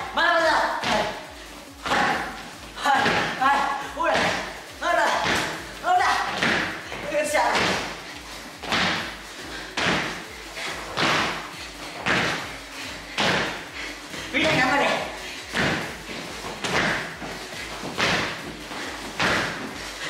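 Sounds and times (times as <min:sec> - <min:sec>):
thuds of jump landings on wood: 0:05.1 - 0:08.0, 0:08.6 - 0:09.2, 0:10.9 - 0:11.4, 0:15.5 - 0:19.8.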